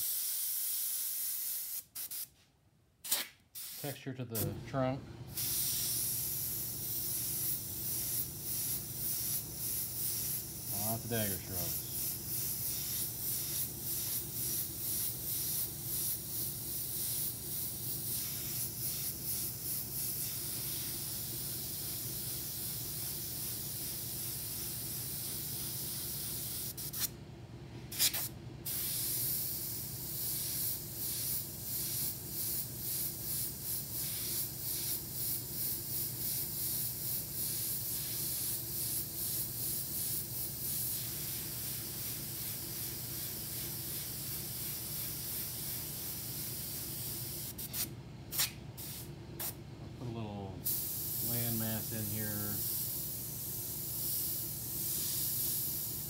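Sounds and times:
airbrush spraying hiss: 0:00.0 - 0:02.4, 0:03.1 - 0:04.6, 0:05.3 - 0:27.1, 0:27.9 - 0:49.6, 0:50.6 - 0:56.0.

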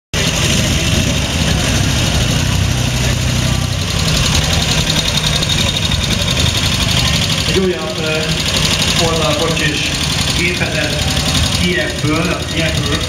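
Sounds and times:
motorcycle engine running at low revs: 0:00.1 - 0:13.0.

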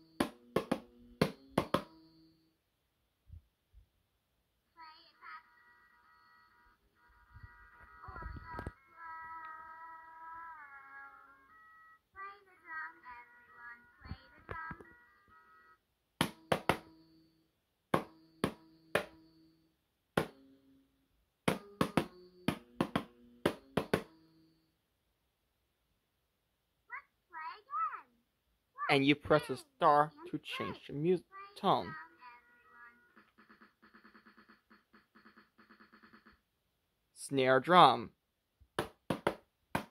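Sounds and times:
toy drum electronic tune: 0:00.0 - 0:02.1, 0:21.5 - 0:24.2, 0:33.0 - 0:36.4
plastic drum pad taps: 0:21.5 - 0:24.1, 0:38.8 - 0:39.9.

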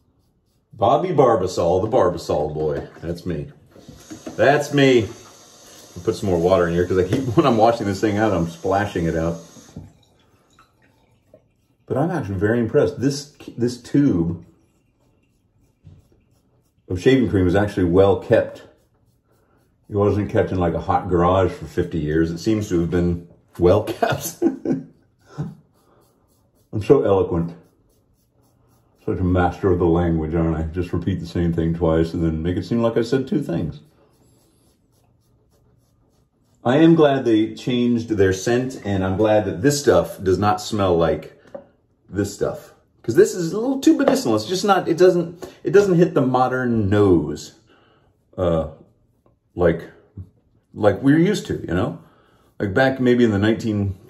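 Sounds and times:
person speaking: 0:00.0 - 0:05.2, 0:05.9 - 0:09.8, 0:11.7 - 0:41.4, 0:42.1 - 0:47.6, 0:49.6 - 0:54.0
razor scraping stubble: 0:00.0 - 0:41.1, 0:52.5 - 0:54.0.

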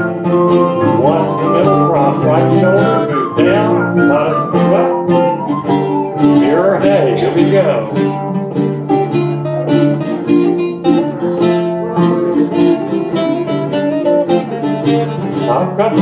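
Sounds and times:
plucked strings dance tune: 0:00.0 - 0:16.0
recorder: 0:00.0 - 0:16.0.

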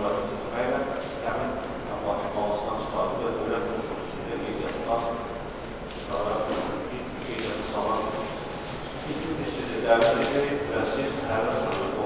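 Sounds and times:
person talking in echoing hall: 0:00.0 - 0:12.0.

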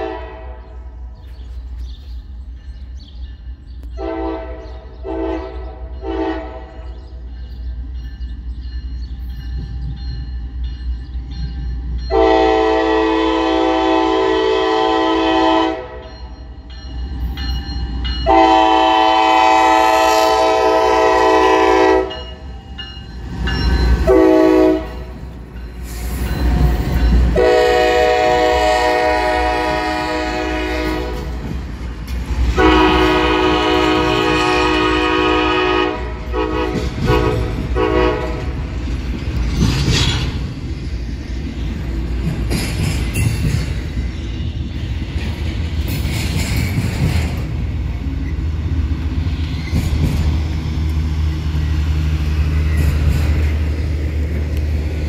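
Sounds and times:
locomotive air horn blasts: 0:00.0 - 0:00.7, 0:04.0 - 0:06.8, 0:12.1 - 0:16.1, 0:18.2 - 0:22.4, 0:24.0 - 0:25.1, 0:27.3 - 0:31.3, 0:32.6 - 0:38.6
diesel locomotives rumbling: 0:00.0 - 0:55.0
train clatter: 0:01.2 - 0:14.7, 0:15.3 - 0:55.0.

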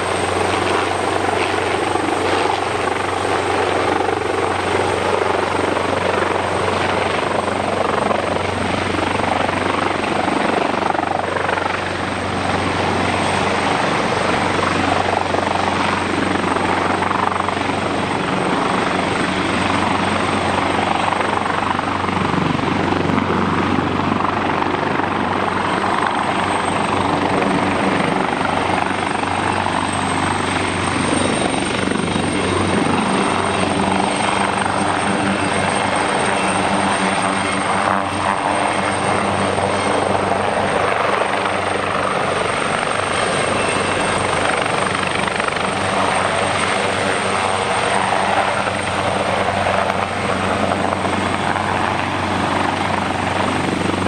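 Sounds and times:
helicopter flying low: 0:00.0 - 0:54.0.

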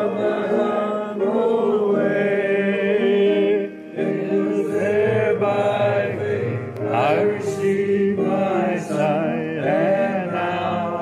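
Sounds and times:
voices singing a slow hymn: 0:00.0 - 0:11.0.

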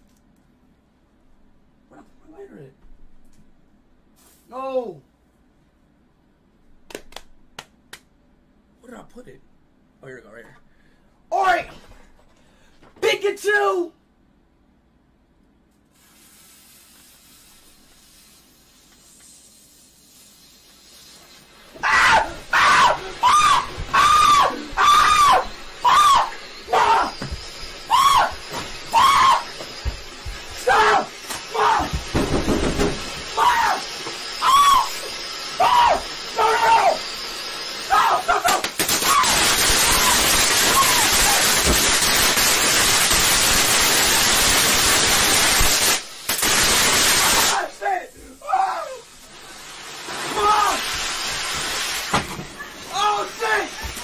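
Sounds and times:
firework fuse hissing: 0:04.2 - 0:04.5, 0:15.8 - 0:54.0
firework fountain spraying sparks: 0:15.8 - 0:54.0
person screaming: 0:21.8 - 0:27.3, 0:27.9 - 0:29.6, 0:30.6 - 0:32.0, 0:33.3 - 0:35.0, 0:35.6 - 0:37.0, 0:37.8 - 0:41.6, 0:47.4 - 0:49.1, 0:50.3 - 0:50.9, 0:52.9 - 0:53.9.

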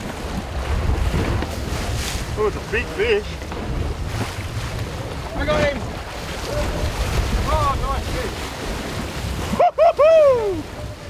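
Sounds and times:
boat engine rumble: 0:00.0 - 0:11.0
wind buffeting microphone: 0:00.0 - 0:11.0.

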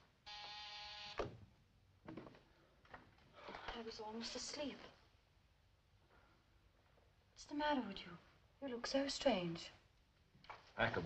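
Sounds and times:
electric buzzer: 0:00.3 - 0:01.2.

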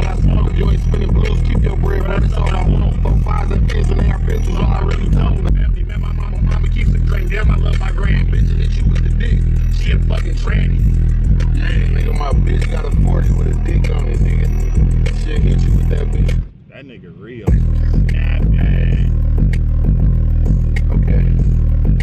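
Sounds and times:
music with pulsing bass: 0:00.0 - 0:16.5, 0:17.5 - 0:22.0
vocal singing: 0:00.0 - 0:16.5, 0:17.4 - 0:22.0.

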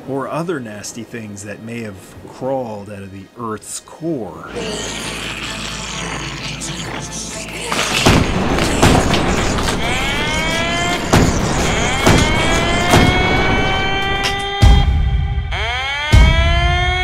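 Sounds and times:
music: 0:04.4 - 0:17.0
person laughing: 0:04.5 - 0:13.8
booms: 0:07.6 - 0:15.1.

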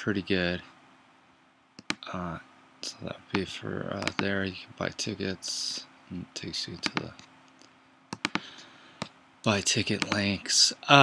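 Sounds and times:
computer mouse clicks: 0:01.8 - 0:02.0, 0:03.3 - 0:04.3, 0:06.8 - 0:09.2, 0:09.9 - 0:10.3.

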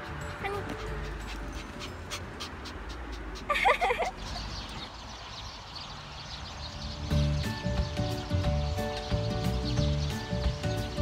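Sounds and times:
dog panting quickly: 0:00.4 - 0:04.8.

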